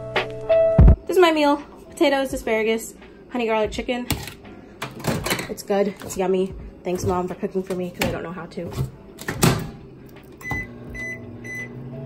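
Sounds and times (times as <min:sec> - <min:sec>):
microwave starting clunk: 0:08.8 - 0:11.8
microwave oven humming: 0:09.0 - 0:12.0
microwave keypad beeping: 0:10.4 - 0:11.8.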